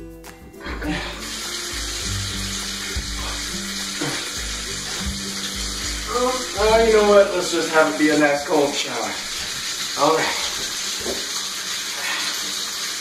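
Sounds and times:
background music: 0.0 - 10.0
water running into bathtub: 0.6 - 13.0.

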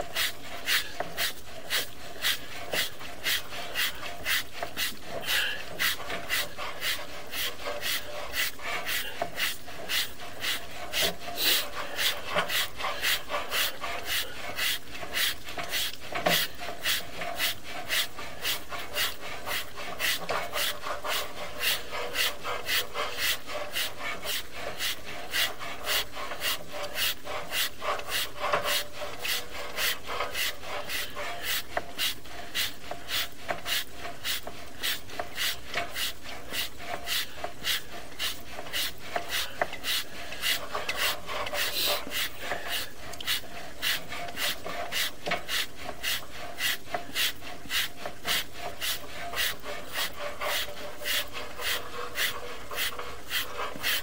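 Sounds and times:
cable rasping rub in pipe: 0.0 - 54.0.

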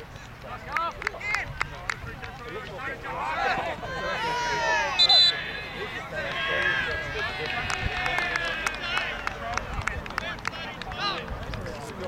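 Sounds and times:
distant shouts of players: 2.8 - 9.5.

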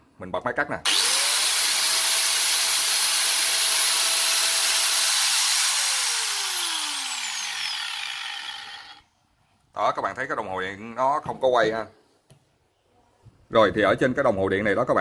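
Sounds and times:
angle grinder whining: 0.9 - 9.0.

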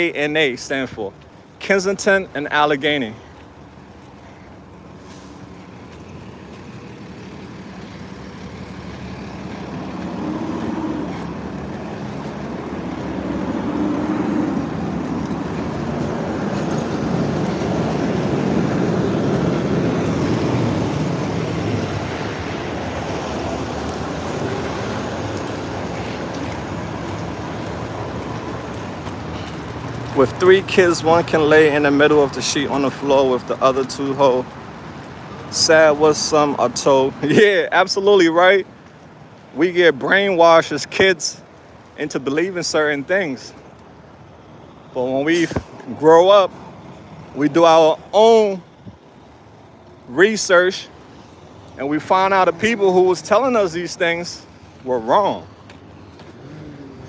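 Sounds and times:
street traffic: 0.0 - 57.0
heavy vehicle passing: 4.1 - 34.2, 51.8 - 57.0.

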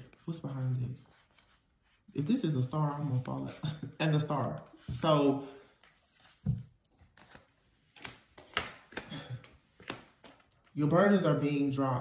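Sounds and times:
faint clicks and taps of cards: 8.0 - 10.7.

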